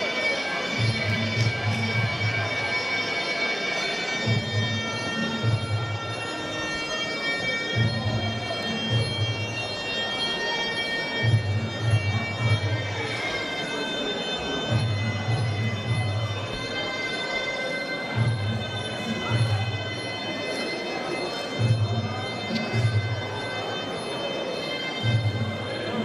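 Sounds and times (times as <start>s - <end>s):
nasal reed oboe melody: 0.0s - 26.0s.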